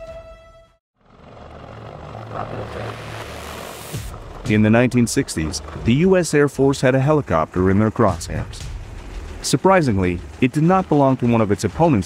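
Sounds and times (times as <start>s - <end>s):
helicopter flying low: 1.0s - 12.0s.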